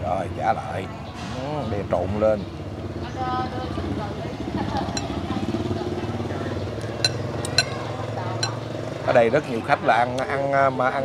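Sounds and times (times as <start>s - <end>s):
metal spoon clinking ceramic bowl: 7.0s - 8.6s.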